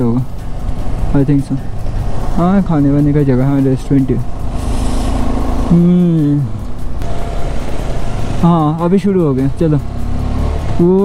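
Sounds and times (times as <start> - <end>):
motorcycle engine drone: 0.0 - 11.0.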